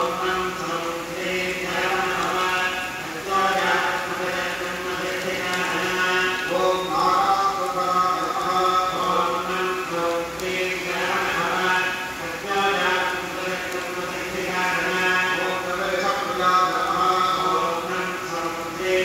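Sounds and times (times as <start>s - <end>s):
mantras chanted: 0.0s - 19.0s.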